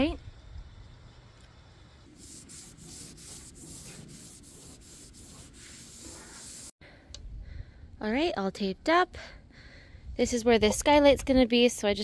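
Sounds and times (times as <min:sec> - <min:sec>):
rag rubbing on metal roof: 0:02.1 - 0:06.7.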